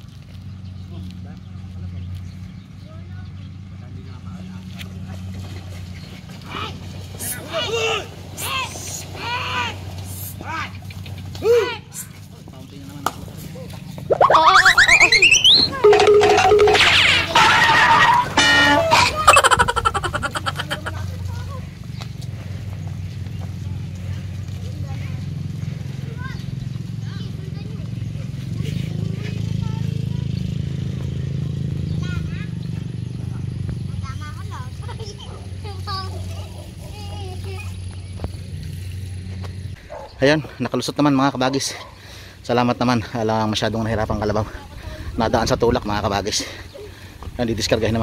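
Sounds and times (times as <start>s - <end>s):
people shouting and calling: 14.1s - 21.0s.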